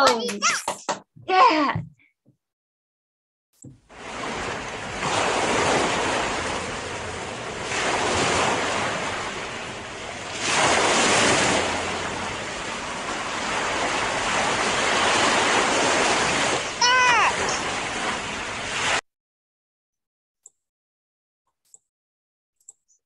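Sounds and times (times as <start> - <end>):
ocean waves washing: 3.9 - 19.0.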